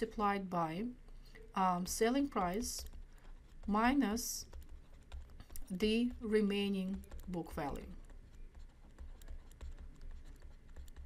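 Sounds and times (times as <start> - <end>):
stylus tapping on tablet: 1.0 - 11.0.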